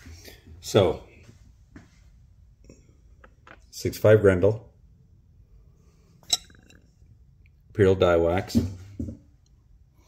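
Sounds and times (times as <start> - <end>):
light metallic clink: 6.2 - 6.9.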